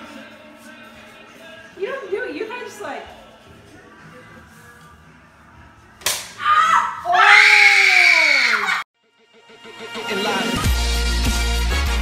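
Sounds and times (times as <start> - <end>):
sharp smack: 6.0 - 6.4.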